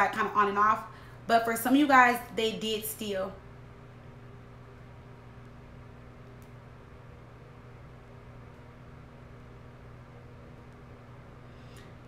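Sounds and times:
appliance hum: 0.0 - 12.0.

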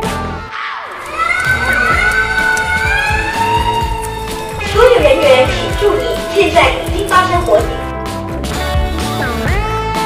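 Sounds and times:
background music: 0.0 - 10.0
wavering gliding voices crying out: 0.9 - 7.8.

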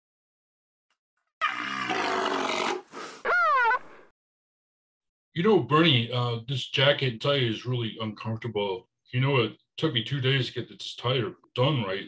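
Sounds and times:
animal roar: 1.4 - 4.0
wavering pitched animal call: 1.4 - 4.0.

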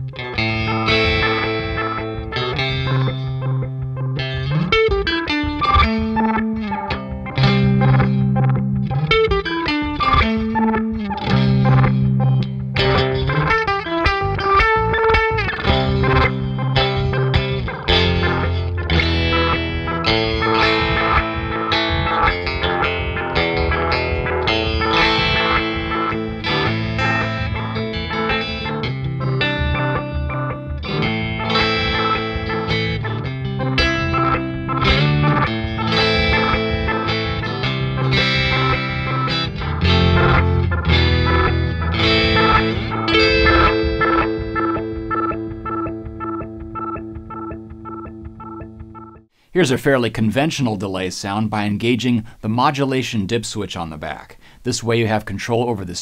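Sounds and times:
electric guitar with pitch-shifted delay: 0.0 - 49.3.

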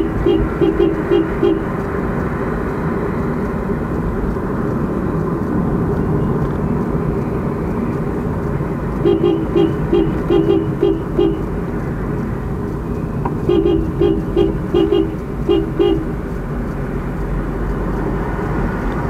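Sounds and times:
vehicle horn tooting: 0.0 - 1.8, 9.0 - 11.6, 13.4 - 16.2
car cabin road noise: 0.0 - 19.0.

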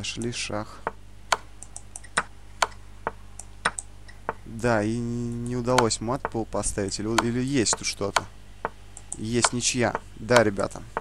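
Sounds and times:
sharp computer clicks: 0.0 - 4.4, 5.4 - 11.0
faint steady hum: 0.0 - 11.0.

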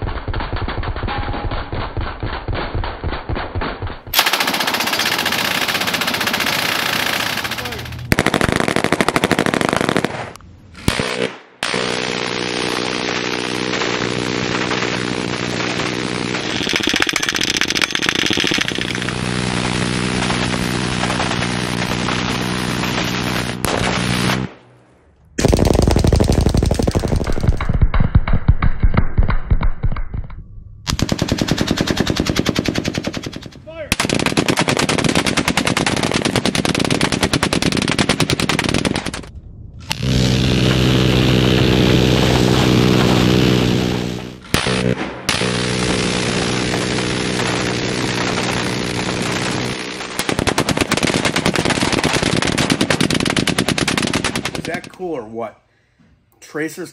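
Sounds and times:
machine-gun fire in bursts: 0.0 - 24.6, 25.4 - 29.9, 30.9 - 39.3, 44.4 - 54.9.

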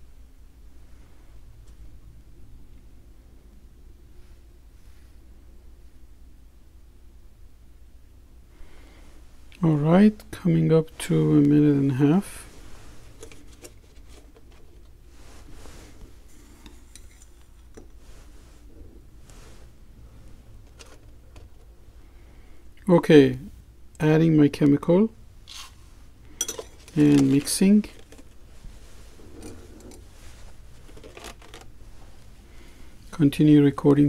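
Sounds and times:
foam cup rustling and scraping: 12.4 - 19.8, 20.5 - 21.7, 25.4 - 33.2.

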